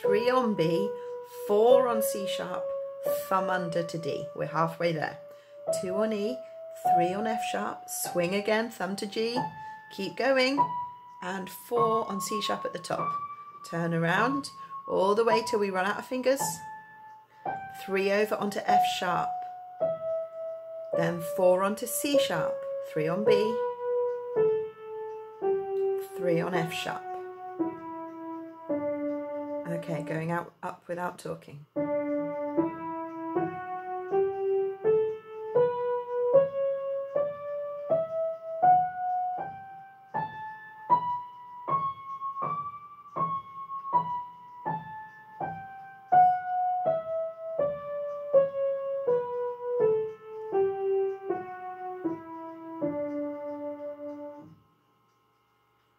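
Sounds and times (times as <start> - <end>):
piano notes descending scale: 0.0 - 30.6, 31.6 - 54.6.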